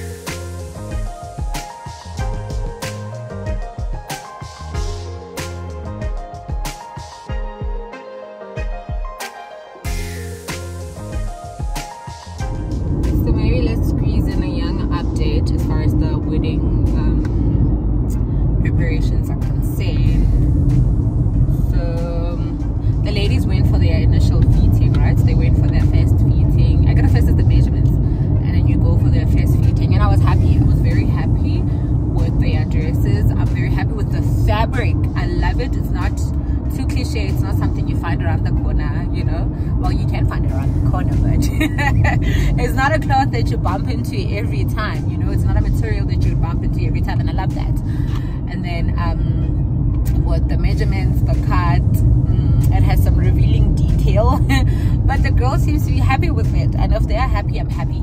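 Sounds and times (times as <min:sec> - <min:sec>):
engine and tyres rumbling on road: 0:00.0 - 0:07.3, 0:09.9 - 0:58.0.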